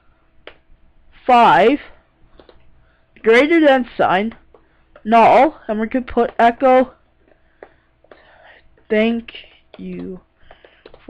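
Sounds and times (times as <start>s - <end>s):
faint steady hum: 0.0s - 11.0s
keyboard clicks: 2.3s - 2.7s, 9.7s - 11.0s
soft breath: 7.2s - 8.8s, 10.4s - 11.0s.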